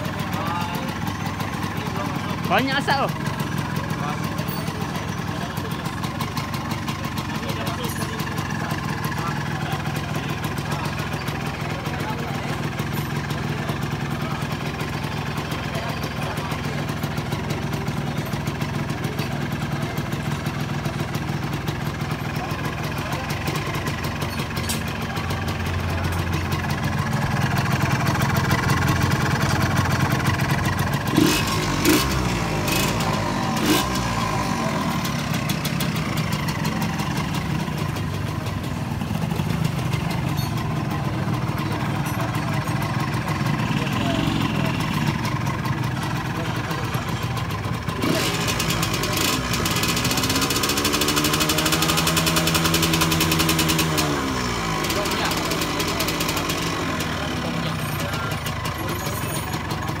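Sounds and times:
motorcycle engine revving: 0.0 - 60.0.

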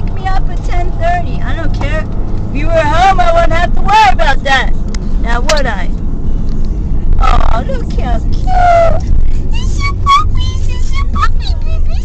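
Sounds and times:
car driving drone: 0.0 - 12.0
high-pitched voice: 8.4 - 12.0.

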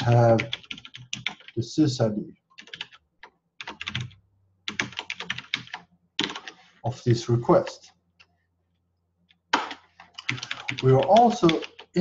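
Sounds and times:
typing on computer keyboard: 0.4 - 1.6, 2.6 - 6.6, 9.5 - 12.0.

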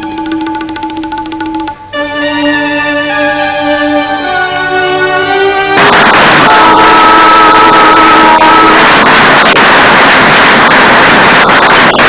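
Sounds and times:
train passing: 0.0 - 12.0
multi-note train horn: 1.9 - 9.5.

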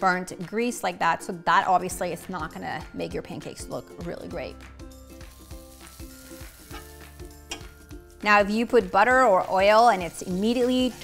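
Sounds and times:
butter sizzling in frying pan: 5.0 - 8.0, 8.6 - 11.0.

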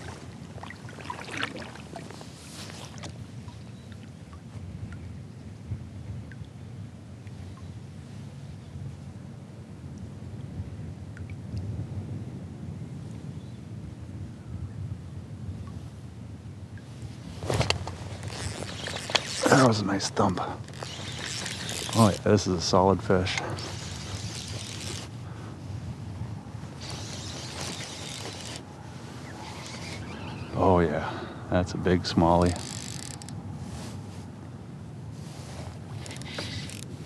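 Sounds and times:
small waves lapping on kayak: 0.0 - 5.2, 16.9 - 30.6, 35.1 - 37.0
wind rumble on microphone: 0.0 - 37.0.

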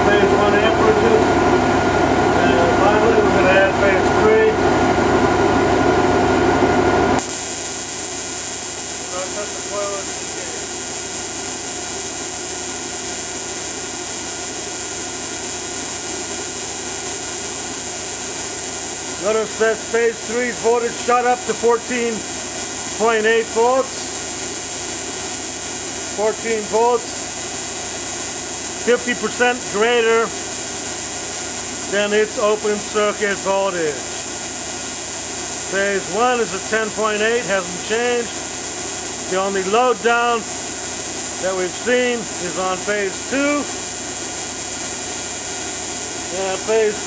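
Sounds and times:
electrical machine hissing: 0.0 - 47.0.

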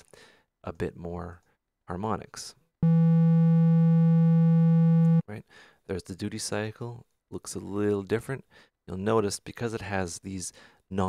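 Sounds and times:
synthesizer triangle wave held note: 2.8 - 5.2.

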